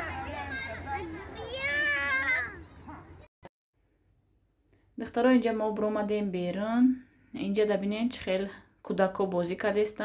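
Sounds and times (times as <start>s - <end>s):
children calling and chattering: 0.0s - 3.3s.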